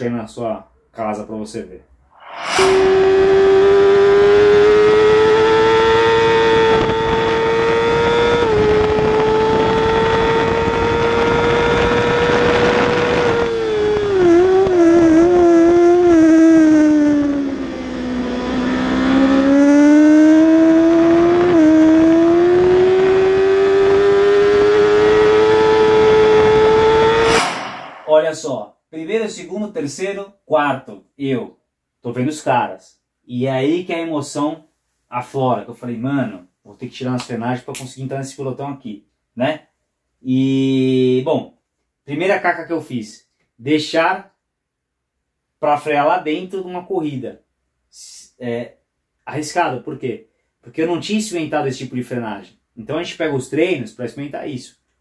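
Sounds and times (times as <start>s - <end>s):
wind rush: 2.2s - 3.7s, 27.1s - 28.4s
motorcycle engine at high revs: 3.9s - 14.1s, 17.2s - 27.1s.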